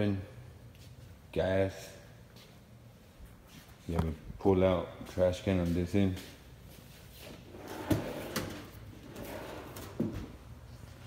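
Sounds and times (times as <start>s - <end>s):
drawer sliding open: 7.5s - 10.4s.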